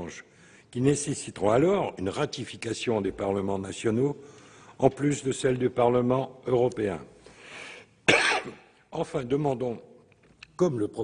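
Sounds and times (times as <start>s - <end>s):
man coughing: 8.0s - 8.7s.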